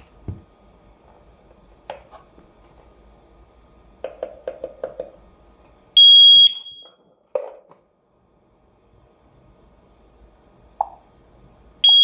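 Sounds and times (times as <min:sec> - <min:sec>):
loud high beep: 0:06.0 - 0:06.9.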